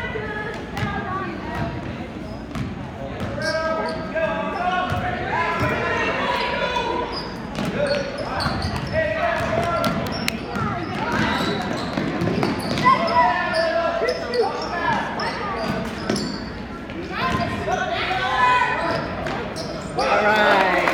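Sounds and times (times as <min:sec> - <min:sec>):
basketball bouncing on gym floor: 0:08.4 - 0:13.1.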